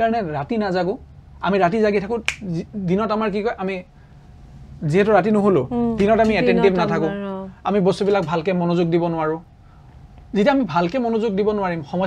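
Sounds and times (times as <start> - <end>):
finger snap: 2.2 - 2.5
man talking: 4.8 - 9.4.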